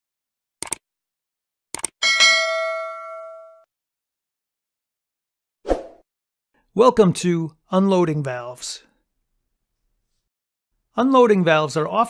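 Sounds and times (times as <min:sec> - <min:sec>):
notification bell chime: 0:02.0 - 0:03.7.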